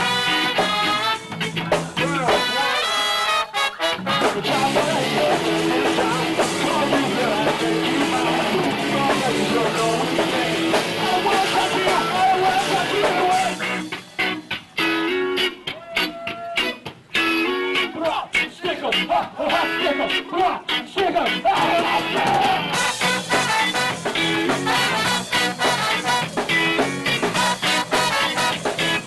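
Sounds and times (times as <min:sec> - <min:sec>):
horn section: 0:00.0 - 0:17.7, 0:21.4 - 0:29.0
bass guitar: 0:00.0 - 0:29.0
drums: 0:00.0 - 0:29.0
electric guitar: 0:00.0 - 0:29.0.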